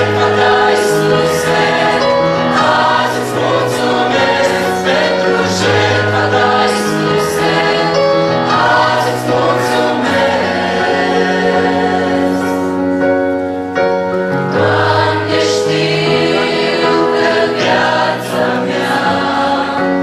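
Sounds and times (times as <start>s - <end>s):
electronic keyboard: 0.0s - 20.0s
mixed choir singing worship song: 0.0s - 20.0s.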